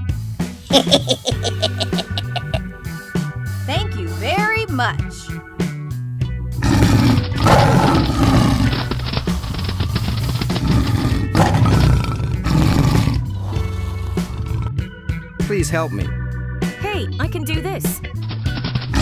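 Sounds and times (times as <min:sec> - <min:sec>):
background music with bass line: 0:00.0 - 0:19.0
big cat roaring: 0:06.6 - 0:09.0, 0:09.9 - 0:14.9.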